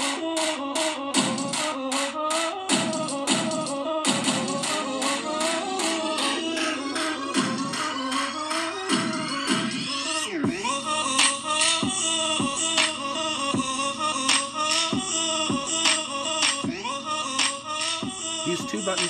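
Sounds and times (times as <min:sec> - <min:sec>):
electronic music with fast beat: 0:00.0 - 0:19.0.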